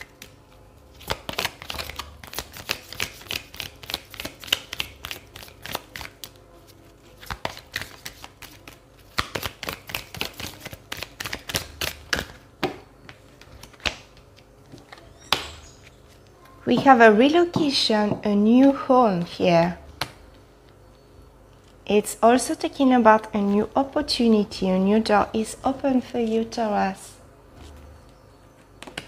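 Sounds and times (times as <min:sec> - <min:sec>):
cards being shuffled: 0:00.0 - 0:12.4.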